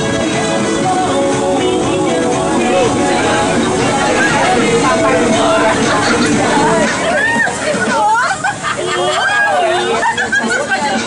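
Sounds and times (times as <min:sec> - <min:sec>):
people calling out and singing: 0:01.5 - 0:08.2.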